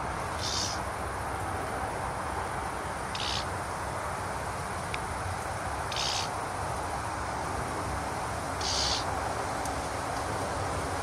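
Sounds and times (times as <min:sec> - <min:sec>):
insect buzzing chirp: 0:00.1 - 0:01.0, 0:02.2 - 0:04.7, 0:05.5 - 0:07.4, 0:08.2 - 0:09.1.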